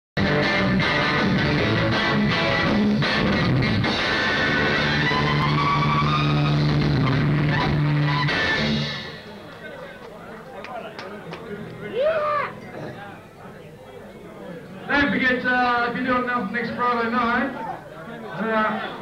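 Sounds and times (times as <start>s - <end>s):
live rock band playing: 0.2s - 9.4s
people talking: 9.3s - 19.0s.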